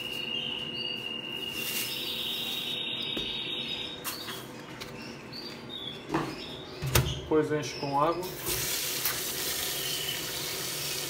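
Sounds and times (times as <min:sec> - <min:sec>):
canary trilling: 0:00.0 - 0:08.3.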